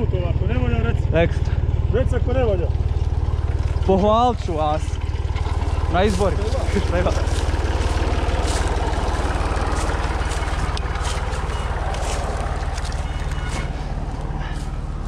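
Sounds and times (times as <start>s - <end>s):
tyres rumbling on trail: 0.0s - 15.0s
bike clicks and rattles: 5.0s - 14.7s.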